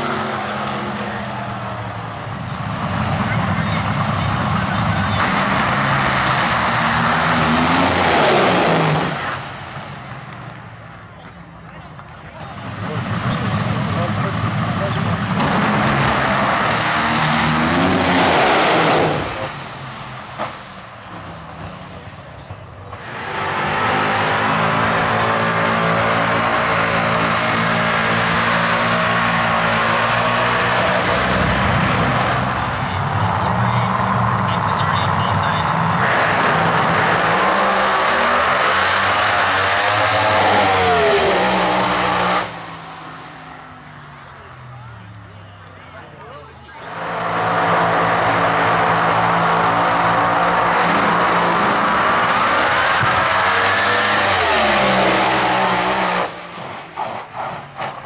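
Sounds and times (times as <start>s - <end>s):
car engine at high revs: 0.0s - 46.0s, 46.7s - 58.0s
race car engine revving: 0.0s - 58.0s.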